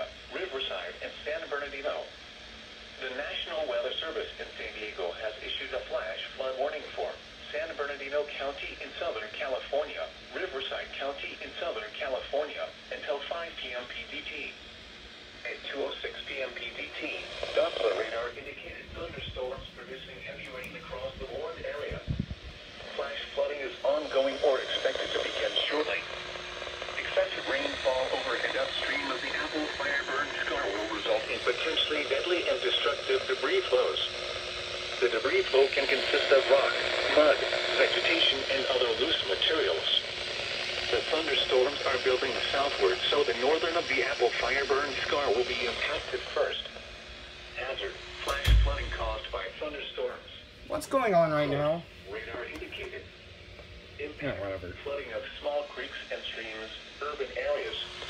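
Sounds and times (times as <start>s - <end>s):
synthesized voice over radio speaker: 0.0s - 2.1s, 3.0s - 14.6s, 15.5s - 34.2s, 35.0s - 40.2s, 40.8s - 46.8s, 47.6s - 53.0s, 54.0s - 58.0s
low thumps: 48.3s - 49.4s.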